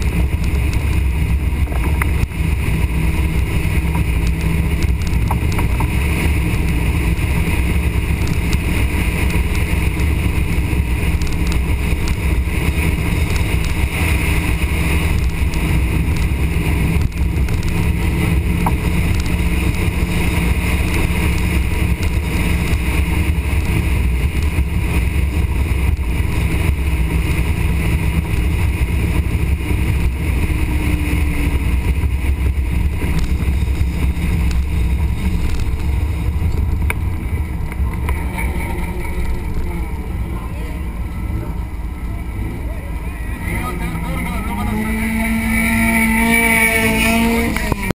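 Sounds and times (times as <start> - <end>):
car engine low rumble: 0.0 - 48.0
voices close by: 39.8 - 44.9.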